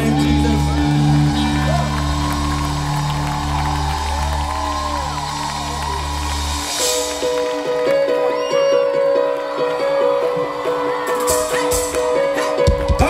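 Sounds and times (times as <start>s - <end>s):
audience voices: 0.0s - 13.0s.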